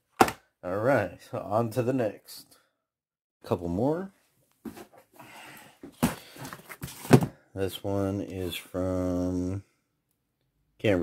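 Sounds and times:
cardboard box rustling scrape: 6.2 - 7.3.

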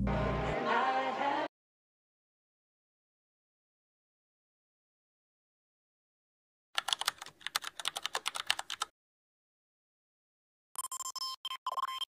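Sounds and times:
computer keyboard typing: 6.8 - 8.9.

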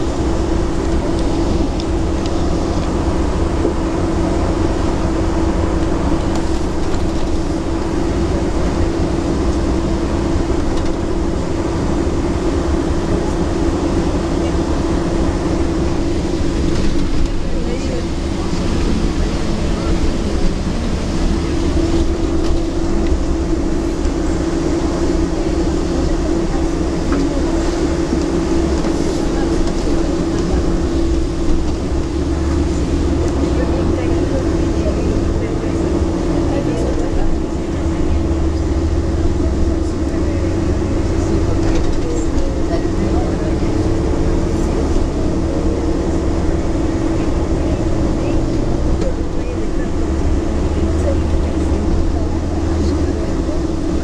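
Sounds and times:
coach engine and road drone: 0.0 - 54.0.

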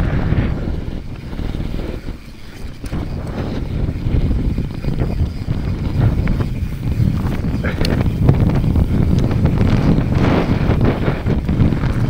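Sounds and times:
bike clicks and rattles: 0.0 - 12.0
wind buffeting microphone: 0.0 - 12.0.

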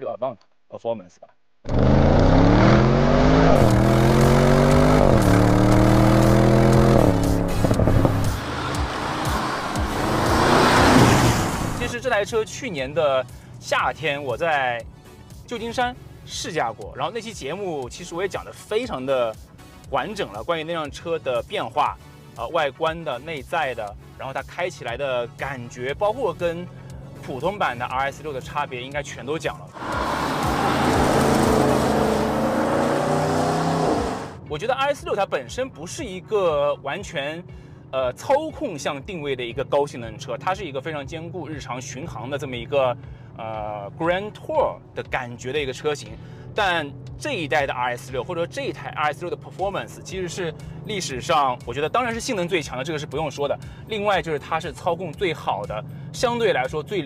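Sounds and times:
tyre and road rush: 1.6 - 16.3, 25.0 - 44.9, 46.0 - 57.0
car engine accelerating hard: 1.7 - 11.9, 29.7 - 34.4
tyres hissing on wet road: 29.8 - 34.3.

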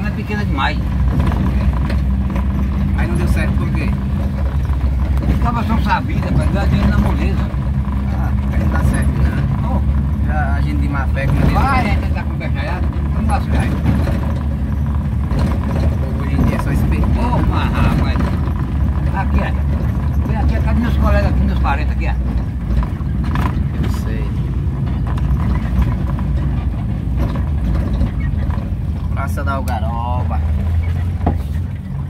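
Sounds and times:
car engine and road rumble: 0.0 - 32.0.

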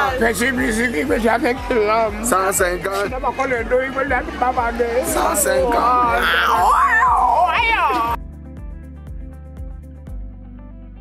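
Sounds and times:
recorded music with steady beat: 0.0 - 11.0.

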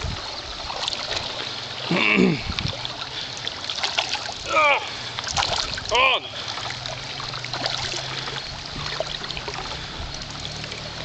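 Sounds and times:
stream water trickling: 0.0 - 11.0
faint small splashes: 0.2 - 11.0.

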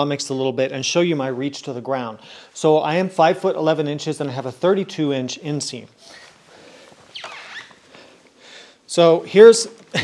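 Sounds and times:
clothing rustling: 6.0 - 8.4
motorcycle seat squeak: 7.1 - 7.8.

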